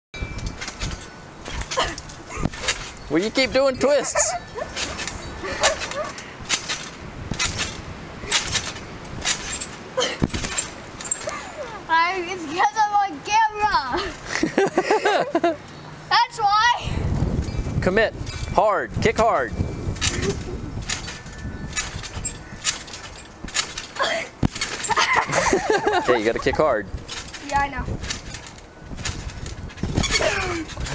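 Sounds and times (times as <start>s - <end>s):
trampoline springs creaking and clanking: 0.2s - 30.9s
person laughing: 14.0s - 15.6s, 24.9s - 26.6s.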